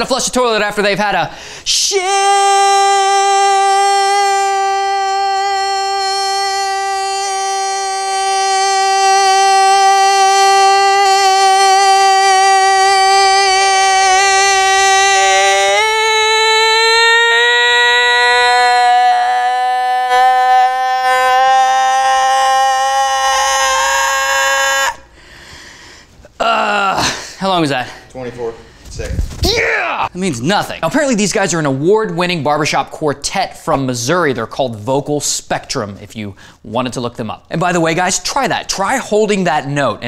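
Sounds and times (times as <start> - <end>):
man singing long note: 1.7 - 24.4.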